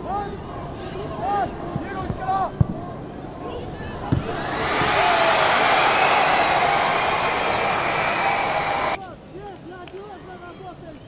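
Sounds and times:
players shouting: 4.2 - 9.0.

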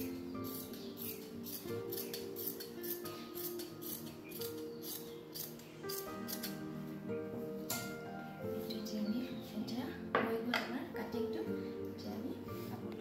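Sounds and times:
shears snipping fabric: 0.0 - 6.6
background music: 0.0 - 13.0.

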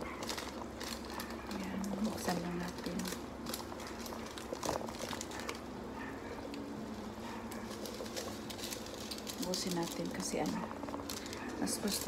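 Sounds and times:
seasoning sachet crinkling: 0.0 - 5.7, 6.5 - 12.0
faint steady hum: 0.0 - 12.0.

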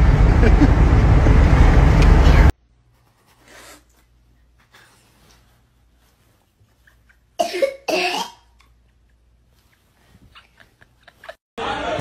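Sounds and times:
toddler coughing: 7.4 - 8.6
faint giggling: 10.3 - 11.4.

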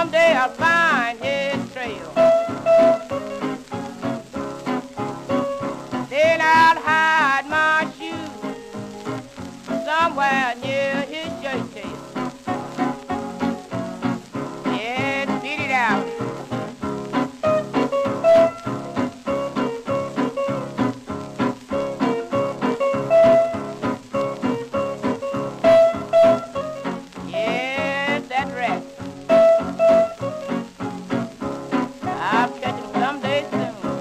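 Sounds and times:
old blues record: 0.0 - 34.0.

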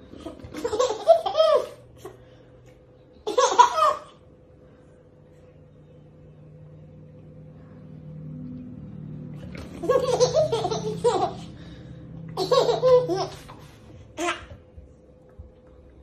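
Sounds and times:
baby giggling: 0.2 - 2.2, 9.8 - 11.6, 12.4 - 13.6
baby laughing: 0.2 - 2.2, 3.2 - 4.2, 9.7 - 11.7, 12.3 - 14.6.

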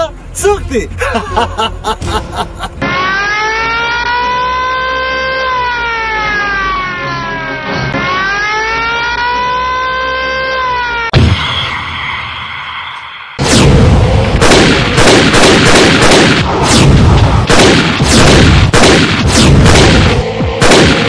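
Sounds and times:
rising and falling electronic tone: 2.8 - 14.2
sudden loud hit: 11.1 - 12.5
low rumble: 11.2 - 15.0.

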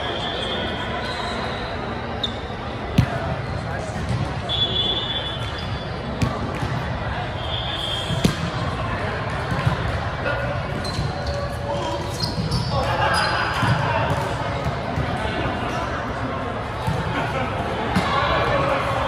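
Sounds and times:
players' voices: 0.0 - 19.0
sneaker squeaks: 0.1 - 2.7, 3.4 - 6.3, 7.3 - 8.5, 10.7 - 13.8
volleyballs hit and bouncing: 2.9 - 4.5, 6.0 - 7.2, 8.1 - 11.8, 13.6 - 15.8.

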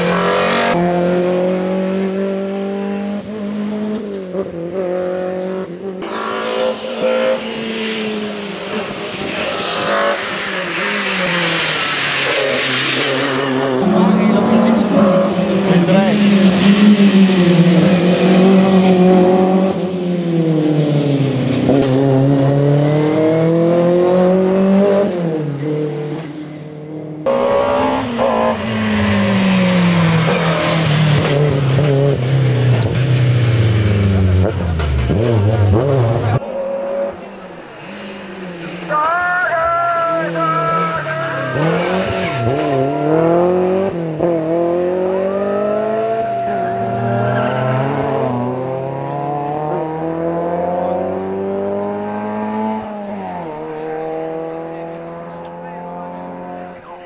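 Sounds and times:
race car engine revving hard: 0.0 - 38.9, 40.1 - 57.0.

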